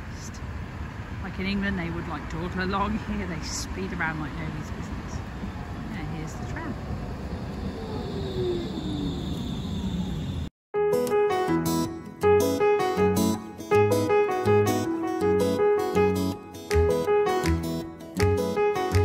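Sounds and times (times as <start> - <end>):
electric tram slowing whine: 0.0 - 10.5
tram rumble: 0.0 - 10.5
piano music: 10.8 - 19.0.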